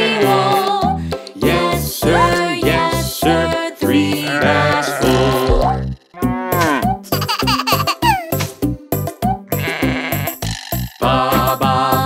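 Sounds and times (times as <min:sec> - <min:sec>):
upbeat children's music: 0:00.0 - 0:12.0
sheep bleating: 0:04.2 - 0:05.6, 0:06.2 - 0:06.9, 0:09.5 - 0:10.4.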